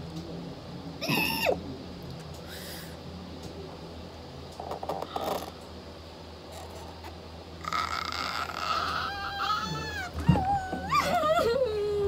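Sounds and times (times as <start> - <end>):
woman squealing: 1.0 - 1.6, 7.6 - 12.0.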